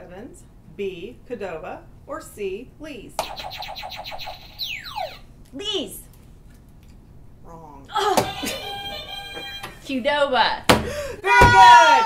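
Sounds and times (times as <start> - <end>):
rapid pulsing electronic tone: 3.2 - 5.3.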